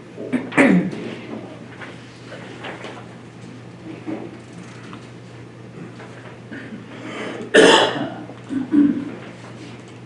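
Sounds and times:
person coughing: 0:00.3 - 0:01.0, 0:07.3 - 0:09.1.

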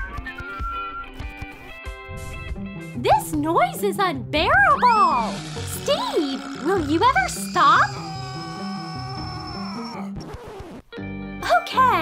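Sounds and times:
light background music: 0:00.0 - 0:10.0, 0:10.9 - 0:12.0.

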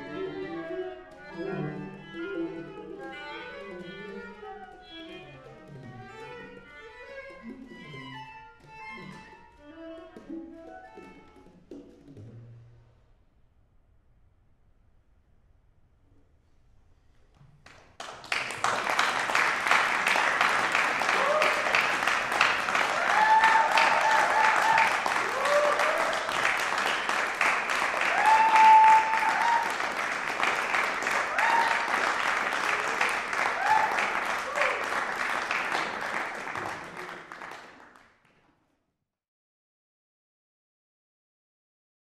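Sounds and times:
audience applauding: 0:17.7 - 0:38.4
whoops and cheers: 0:21.0 - 0:21.9, 0:22.7 - 0:26.6, 0:27.9 - 0:30.0, 0:31.1 - 0:35.0.

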